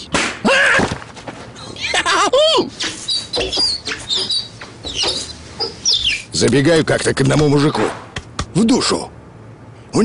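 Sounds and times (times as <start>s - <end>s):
loud wavering animal call: 2.8s - 6.3s.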